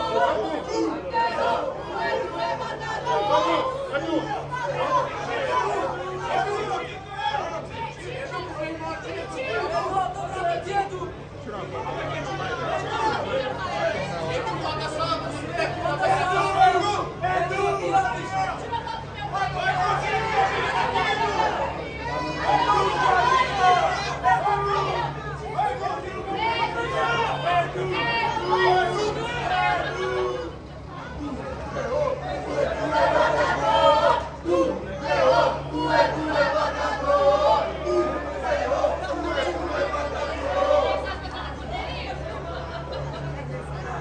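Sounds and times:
people chattering: 0.0 - 44.0.

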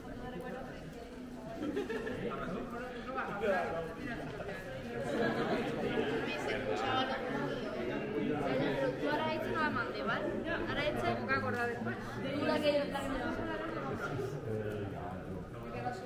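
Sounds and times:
people talking at once: 0.0 - 16.0.

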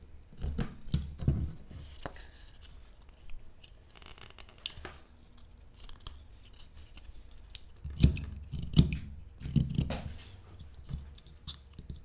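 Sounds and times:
knife carving wood: 0.4 - 12.0.

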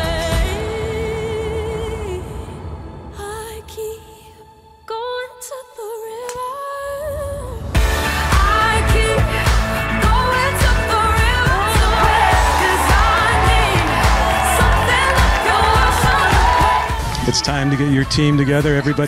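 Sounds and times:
pop band with drum beat: 0.0 - 1.7, 7.8 - 19.0
person singing: 8.3 - 19.0.

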